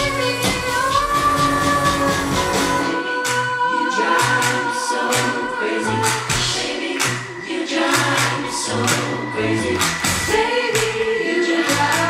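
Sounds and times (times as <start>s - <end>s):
woman singing: 0.0s - 9.3s
pop band playing: 0.0s - 12.0s
pulsing beat: 0.0s - 12.0s.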